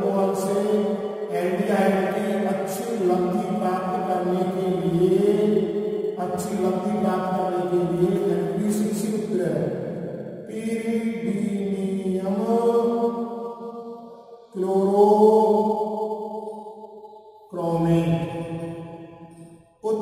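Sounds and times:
man chanting long syllables: 0:00.0 - 0:05.6, 0:14.4 - 0:15.8, 0:17.5 - 0:18.8.

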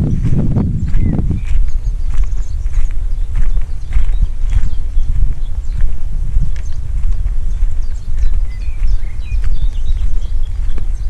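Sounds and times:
footsteps on gravel: 0:00.0 - 0:11.0
low microphone rumble: 0:00.0 - 0:11.0.

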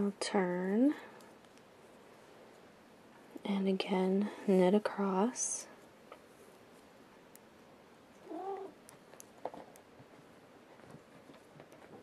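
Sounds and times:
cat meowing: 0:08.2 - 0:08.8.

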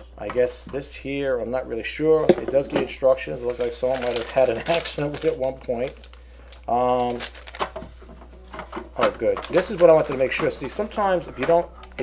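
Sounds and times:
paper sheet rustling: 0:03.3 - 0:11.6.

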